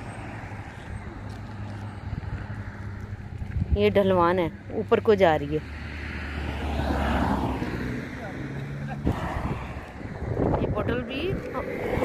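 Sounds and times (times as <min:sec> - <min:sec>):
car passing by: 0:05.4 - 0:12.0.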